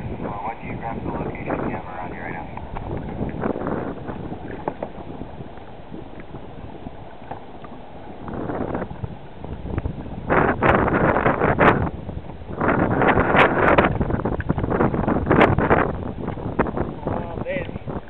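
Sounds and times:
wind buffeting microphone: 0.0s - 18.0s
water sloshing around kayak hull: 2.0s - 18.0s.

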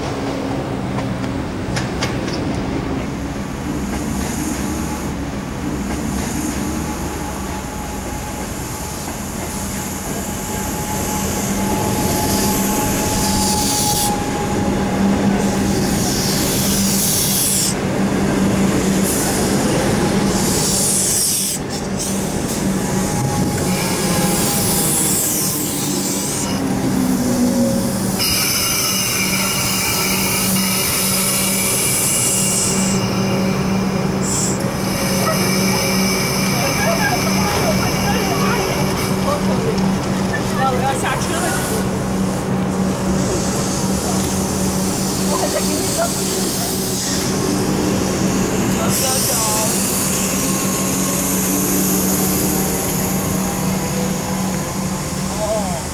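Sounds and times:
electric train hum: 0.0s - 55.9s
train brake squeals: 6.8s - 17.8s, 27.6s - 39.2s.

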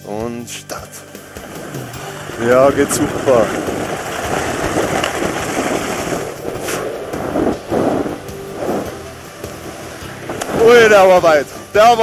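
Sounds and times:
skis crackling on icy tracks: 0.8s - 9.1s, 9.7s - 12.0s
wind on microphone: 1.2s - 12.0s.

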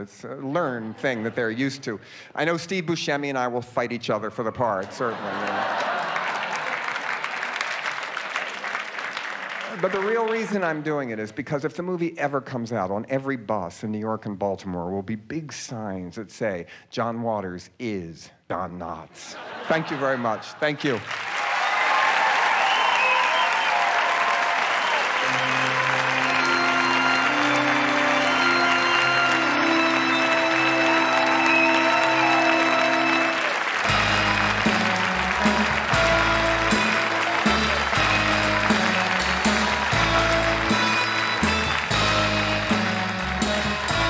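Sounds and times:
audience applauding: 4.9s - 11.1s, 19.6s - 44.0s
closing music with bass line: 33.9s - 44.0s.

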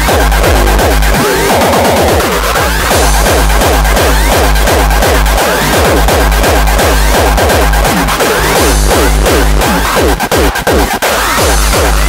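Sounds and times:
distorted kick drum pounding: 0.0s - 12.0s
falling pitched hits: 0.0s - 12.0s
hardcore electronic dance music: 0.0s - 12.0s.

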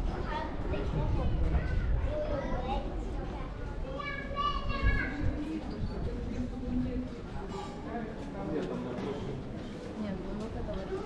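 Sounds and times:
people talking: 0.1s - 11.0s.

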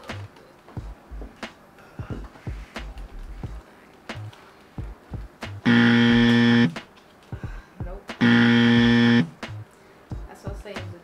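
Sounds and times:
game-show buzzer: 5.7s - 6.8s, 8.2s - 9.4s.

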